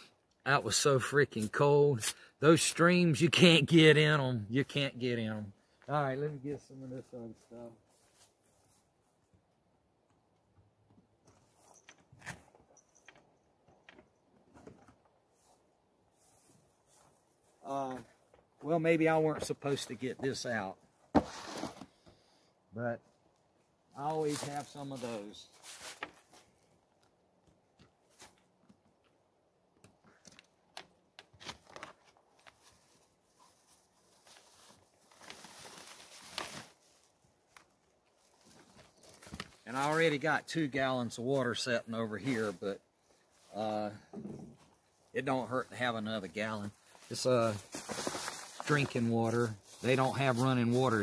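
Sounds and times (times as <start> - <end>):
camping gear rustling and knocking: 10.0 - 22.3, 23.0 - 39.8, 42.8 - 45.1, 46.7 - 50.7
plastic bag rustling: 31.6 - 37.1, 46.9 - 50.7.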